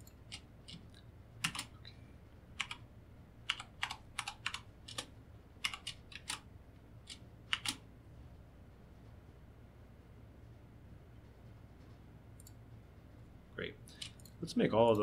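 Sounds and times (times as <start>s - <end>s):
faint low hum: 0.0s - 15.0s
keyboard keystrokes: 1.4s - 1.7s, 2.6s - 2.8s, 3.5s - 6.4s, 7.0s - 7.8s.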